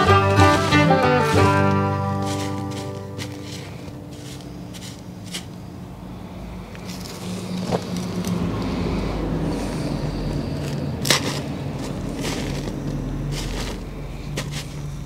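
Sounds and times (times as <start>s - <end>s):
hand trowel scraping soil: 0.0s - 5.6s, 10.3s - 15.0s
low engine-like hum: 3.0s - 15.0s.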